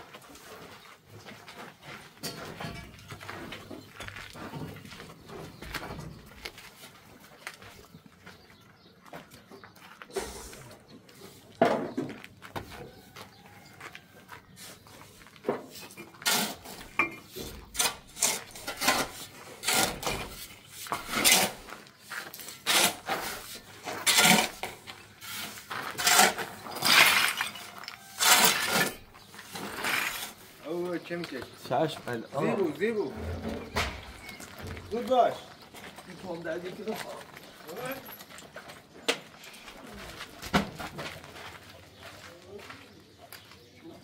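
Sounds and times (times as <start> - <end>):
irregular knocks and clinks: 2.2 - 6.4.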